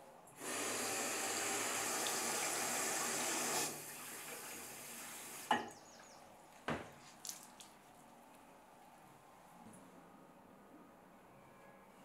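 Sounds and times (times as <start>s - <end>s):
basin tap running: 0.4s - 5.6s.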